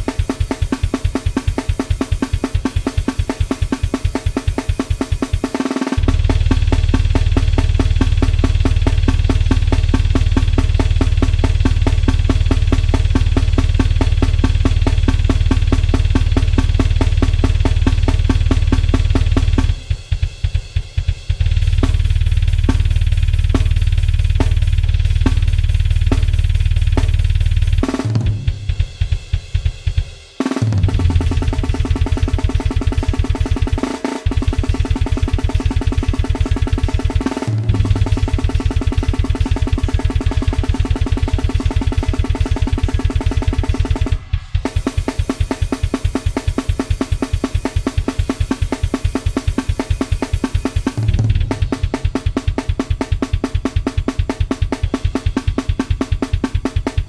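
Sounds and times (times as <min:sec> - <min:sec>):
blast beat drums: 0:00.0 - 0:57.0
falling tom fill: 0:00.0 - 0:57.0
rapid kick drum: 0:00.0 - 0:57.0.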